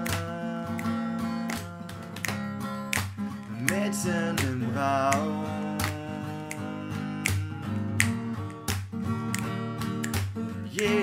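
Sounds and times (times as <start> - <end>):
strummed guitar chords: 0.0 - 11.0.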